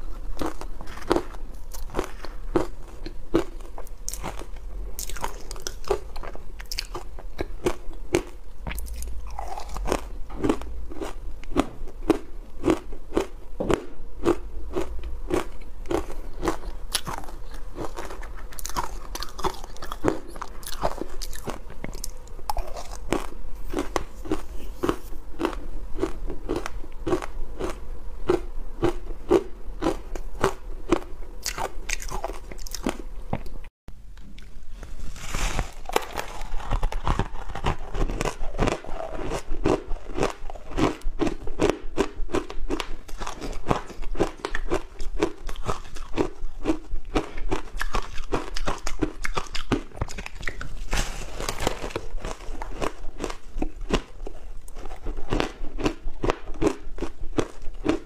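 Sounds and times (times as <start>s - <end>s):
ice crunching being chewed: 0.0s - 33.6s, 35.4s - 58.0s.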